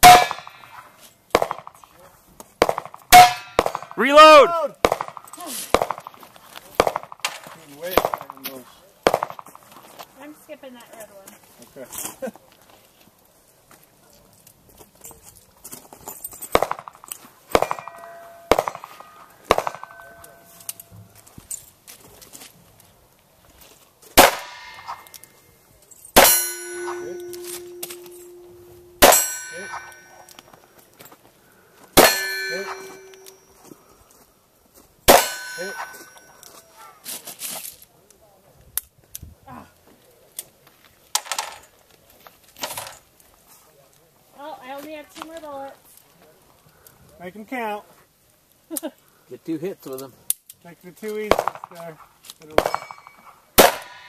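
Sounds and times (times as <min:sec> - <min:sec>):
steel plate ringing: 0:00.0 - 0:00.8, 0:03.1 - 0:04.0, 0:17.6 - 0:21.1, 0:26.1 - 0:30.4, 0:32.0 - 0:33.6, 0:35.1 - 0:36.5, 0:52.6 - 0:54.0
faint metallic clanks: 0:24.6 - 0:31.2.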